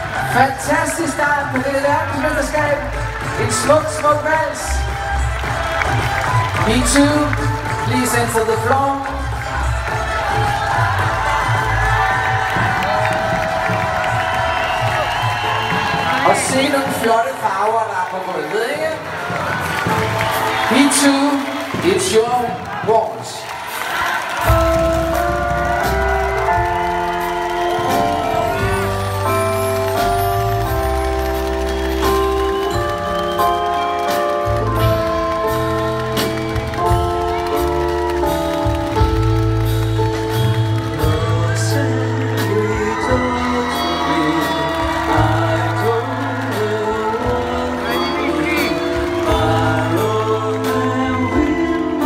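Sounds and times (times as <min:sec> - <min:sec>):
crowd cheering and shouting: 0:00.0 - 0:52.0
music with steady beat: 0:24.4 - 0:52.0
slow waltz from live band: 0:24.4 - 0:52.0.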